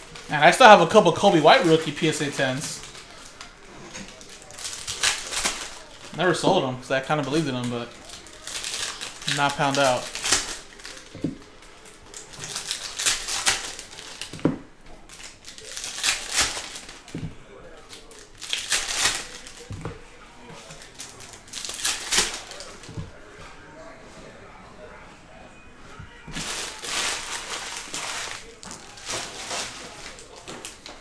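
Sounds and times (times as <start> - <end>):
foil wrappers crinkling and tearing: 0.0 - 20.0, 20.6 - 23.1, 26.2 - 31.0.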